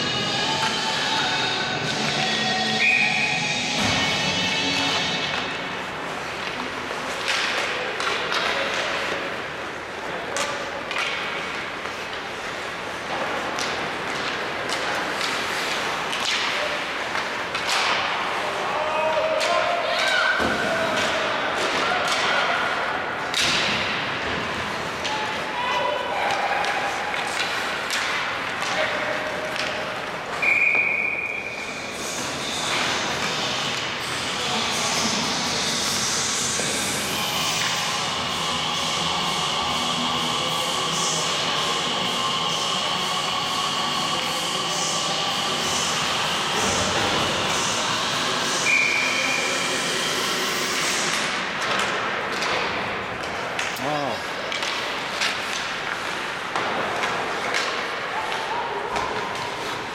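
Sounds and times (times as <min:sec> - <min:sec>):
pucks and sticks thudding: 0:03.6 - 0:34.1, 0:50.6 - 0:59.9
short whistle blasts: 0:30.4 - 0:31.6, 0:48.6 - 0:49.2.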